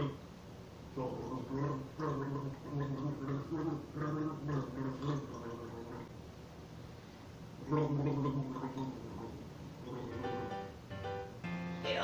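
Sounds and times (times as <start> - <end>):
man gargling a tune: 0.0 - 0.2, 1.0 - 6.1, 7.6 - 10.4.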